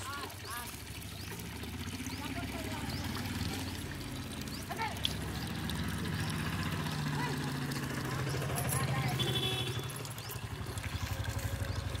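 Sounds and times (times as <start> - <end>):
small engine running: 0.6 - 12.0.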